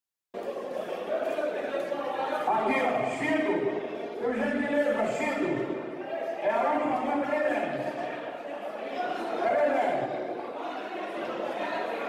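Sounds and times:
crowd in a large hall: 0.3s - 12.0s
men talking: 0.4s - 12.0s.

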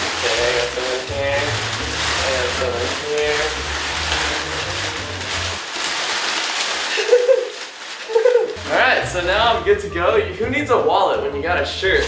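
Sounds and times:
paper banknotes rustling: 0.0s - 9.0s.

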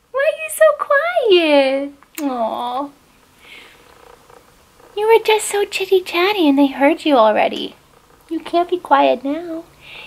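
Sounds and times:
soft breath: 3.4s - 4.1s, 9.7s - 10.0s.

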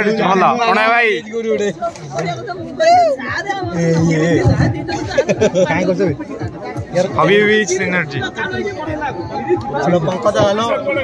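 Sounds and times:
men chattering: 0.0s - 11.0s.

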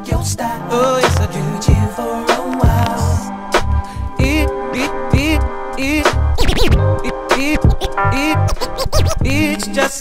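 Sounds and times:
hip hop music: 0.0s - 10.0s
turntable scratching: 0.9s - 10.0s.

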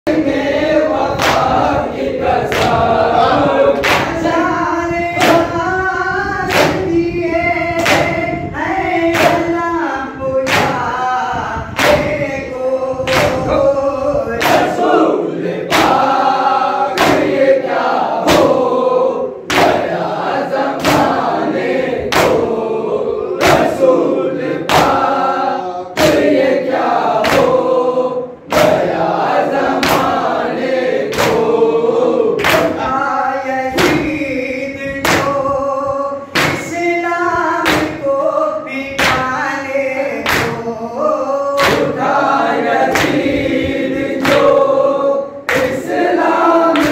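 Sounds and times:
men chanting in unison: 0.1s - 46.9s.

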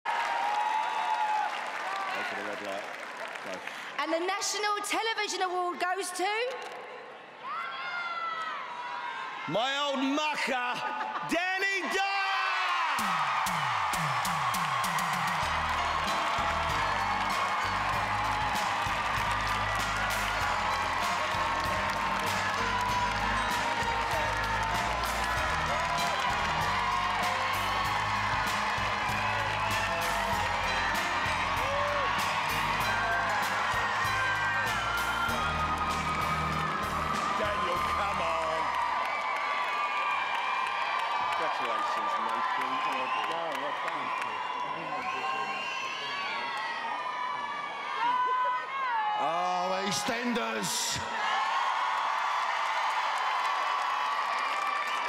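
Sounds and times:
large audience applauding: 0.0s - 5.5s, 9.6s - 55.0s
upbeat music with bass line: 13.0s - 38.7s.

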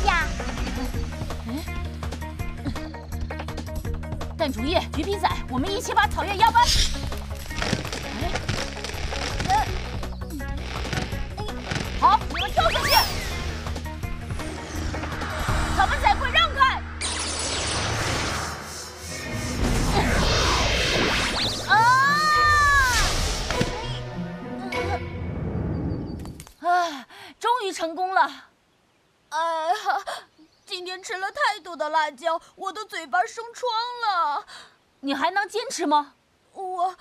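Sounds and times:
cartoon background music: 0.0s - 17.9s, 21.4s - 25.7s
cartoon sound effects: 11.4s - 13.6s, 19.6s - 24.0s
loud swooping tone: 12.2s - 24.2s
character vocalisations: 21.4s - 25.2s.

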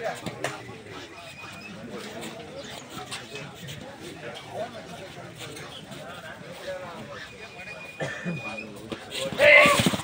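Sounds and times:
men calling and shouting: 0.0s - 10.0s.

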